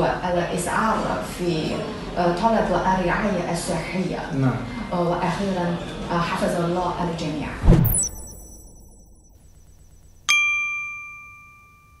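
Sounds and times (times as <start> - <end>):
bright bell-like ding: 7.8 - 9.2, 10.3 - 12.0.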